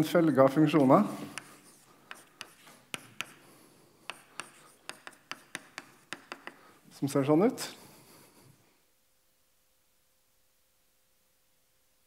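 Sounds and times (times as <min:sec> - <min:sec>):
chalk tapping on blackboard: 0:00.6 - 0:06.7.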